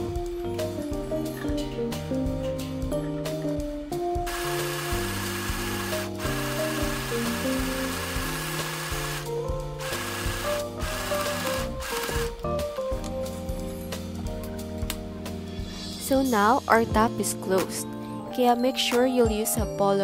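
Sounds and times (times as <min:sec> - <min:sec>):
background music with melody and bass: 0:00.0 - 0:20.0
sewing machine running: 0:04.3 - 0:12.4.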